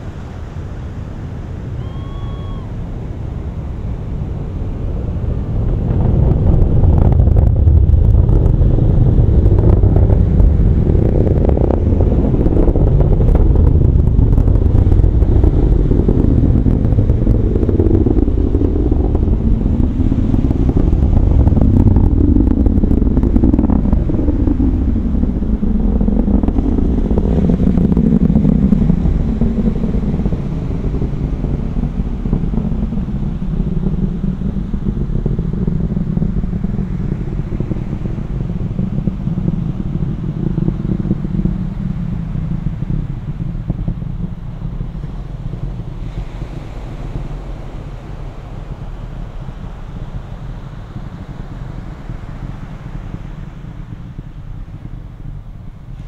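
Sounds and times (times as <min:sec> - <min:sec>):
distant rocket engines roaring: 0:00.0 - 0:56.0.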